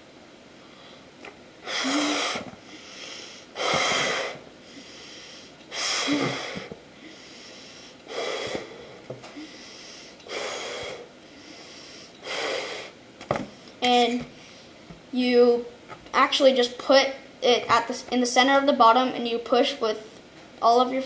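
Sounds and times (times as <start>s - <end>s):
puffs of breath into balloon: 1.6s - 13.0s
quiet breathing: 1.8s - 14.8s.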